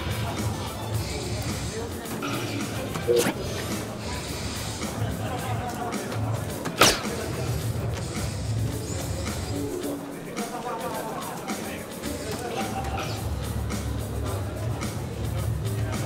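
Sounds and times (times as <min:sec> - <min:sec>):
murmur of crowd: 0:00.0 - 0:16.0
dart striking dartboard: 0:03.0 - 0:03.8, 0:06.8 - 0:07.1.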